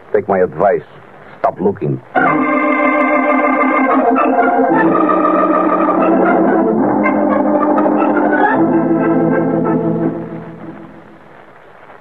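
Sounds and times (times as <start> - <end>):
organ chords: 2.1 - 11.4.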